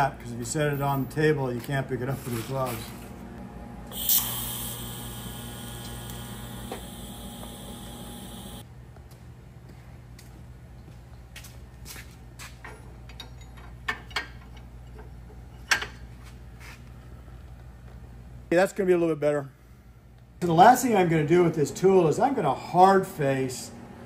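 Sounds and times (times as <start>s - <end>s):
welding arc buzzing hiss: 3.9s - 8.6s.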